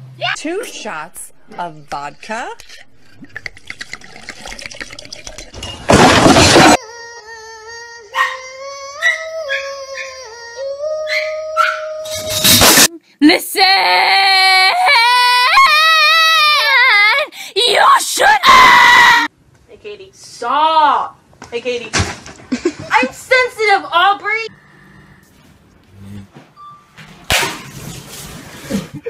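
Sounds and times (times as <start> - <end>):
liquid glugging from a bottle: 2.2 - 6.4
high-pitched voice screaming: 13.6 - 19.3.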